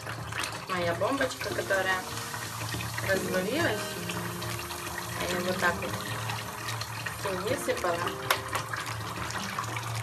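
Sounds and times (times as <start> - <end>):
water splashing in bathtub: 0.0 - 10.0.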